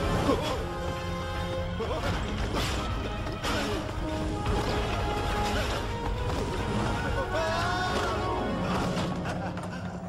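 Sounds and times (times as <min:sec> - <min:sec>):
film soundtrack music: 0:00.0 - 0:10.0.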